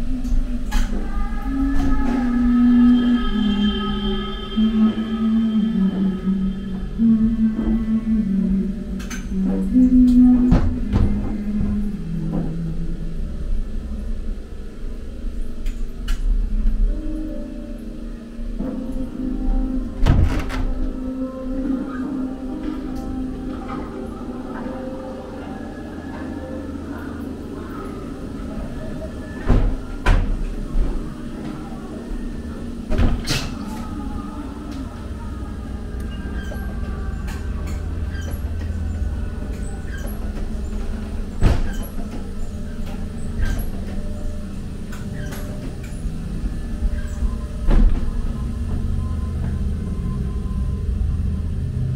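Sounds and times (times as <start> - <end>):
ride car rumbling on track: 22.4 - 51.9.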